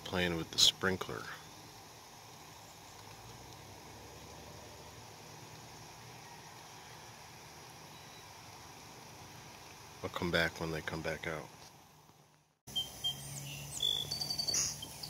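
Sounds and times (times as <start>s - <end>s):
outdoor hiss: 0.0s - 15.0s.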